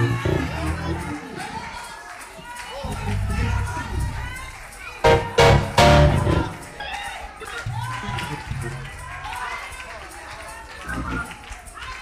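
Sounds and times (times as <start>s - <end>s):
indistinct voices: 0.0s - 12.0s.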